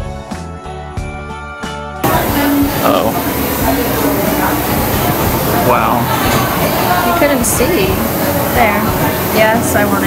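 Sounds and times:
noisy background: 2.0s - 10.0s
people talking: 2.0s - 10.0s.

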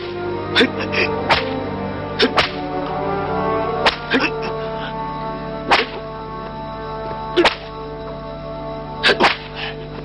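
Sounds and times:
background music with steady chords: 0.0s - 10.0s
sharp whip-like cracks: 1.3s - 1.6s, 2.2s - 2.6s, 3.8s - 4.1s, 5.7s - 6.0s, 7.4s - 7.7s, 9.1s - 9.6s.

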